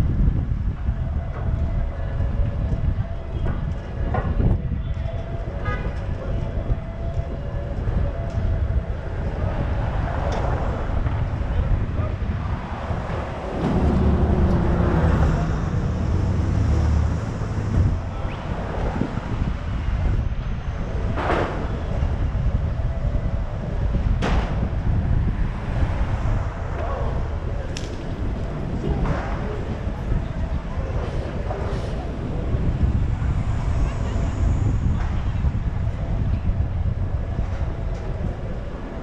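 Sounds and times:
city street traffic: 0.0 - 39.0
low rumble: 0.0 - 39.0
wind buffeting microphone: 0.0 - 39.0.

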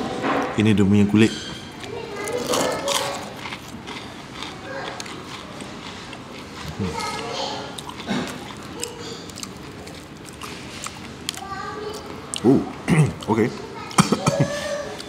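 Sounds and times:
murmur of voices: 0.0 - 15.0
crispy fried chicken crunching: 1.8 - 15.0.

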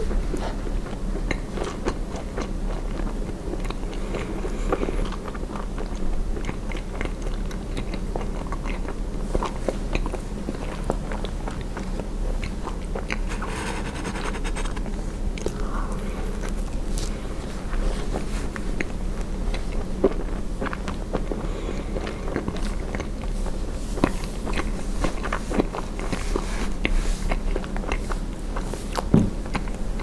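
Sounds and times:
mouth chewing marshmallow: 0.0 - 30.0
steady low hum: 0.0 - 30.0.

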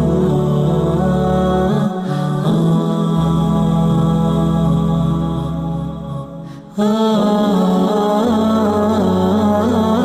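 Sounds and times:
sustained layered music tones: 0.0 - 10.0.

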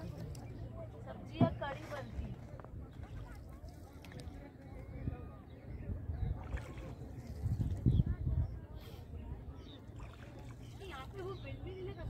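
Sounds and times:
paddle stroking through water: 1.2 - 4.7, 9.8 - 11.4
water knocking against wooden boat: 1.3 - 2.4.

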